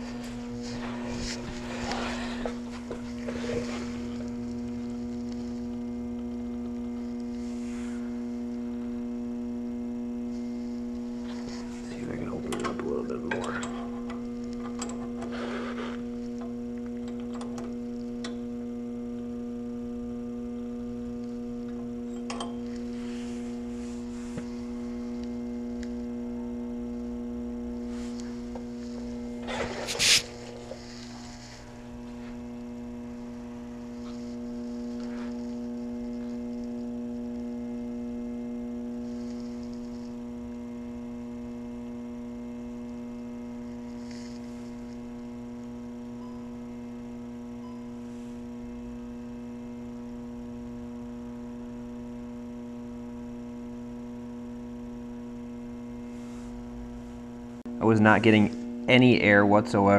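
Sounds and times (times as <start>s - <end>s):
pump motor electric hum: 0.0s - 59.9s.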